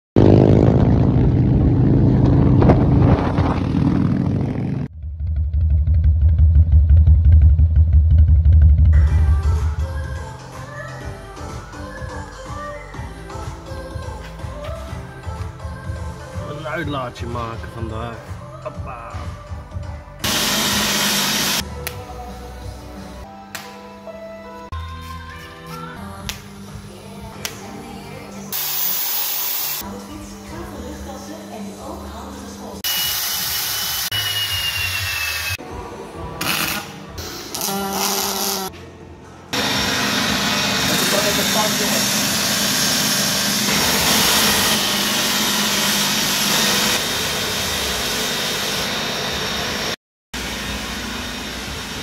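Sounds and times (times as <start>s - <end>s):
motorcycle engine running: 0.2s - 9.5s
deep low throbbing pulse: 0.2s - 9.8s
music: 7.0s - 28.6s, 29.8s - 32.8s, 34.3s - 39.6s.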